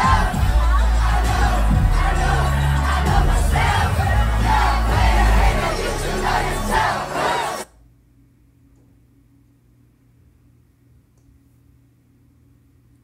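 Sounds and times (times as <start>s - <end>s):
crowd yelling: 0.0s - 7.7s
loud dance music: 0.0s - 7.7s.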